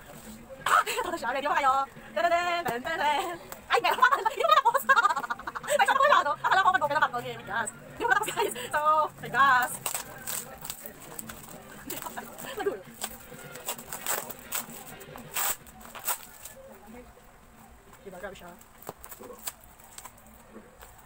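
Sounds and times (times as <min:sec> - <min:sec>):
plastic packaging crinkling: 0:09.7 - 0:12.4.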